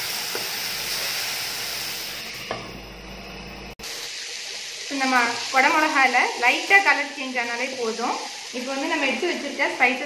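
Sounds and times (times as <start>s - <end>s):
vegetables sizzling in oil: 0.0s - 2.7s, 3.8s - 10.0s.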